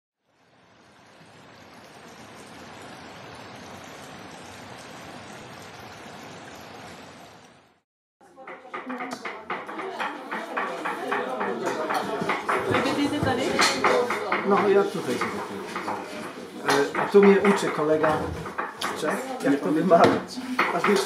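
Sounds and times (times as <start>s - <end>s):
people talking: 8.2s - 21.0s
knife chopping vegetables: 8.5s - 21.0s.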